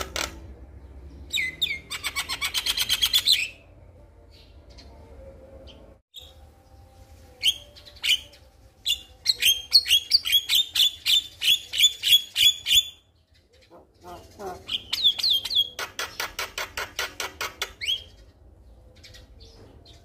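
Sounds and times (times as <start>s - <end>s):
myna bird singing: 0.0s - 20.0s.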